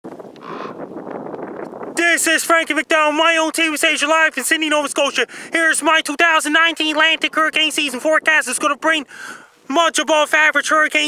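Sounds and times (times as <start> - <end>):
outdoor background rush: 0.0 - 11.0.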